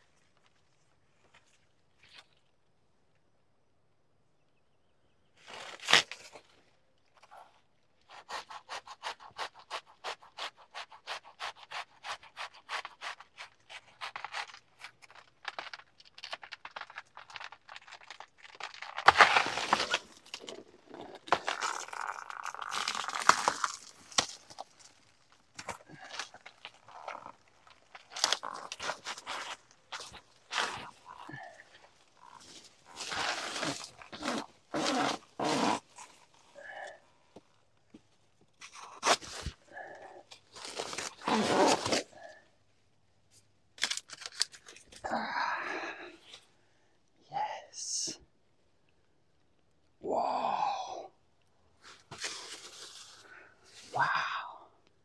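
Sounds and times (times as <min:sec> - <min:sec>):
tearing and rustling leaves: 0:05.4 - 0:06.6, 0:08.0 - 0:36.5, 0:38.8 - 0:42.4, 0:51.8 - 0:53.9
sawing through plant stalk: 0:08.1 - 0:15.0, 0:32.2 - 0:36.1.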